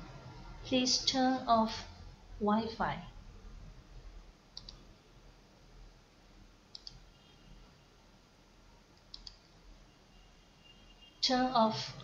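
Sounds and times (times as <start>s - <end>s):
computer mouse double click: 4.6s - 4.8s, 6.7s - 7.0s, 9.0s - 9.4s.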